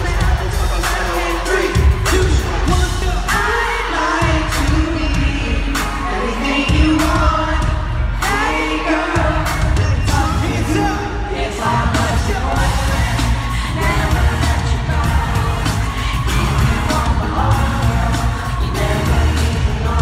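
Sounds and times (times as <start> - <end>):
heavy bass beat: 0.0 - 20.0
person singing: 0.0 - 20.0.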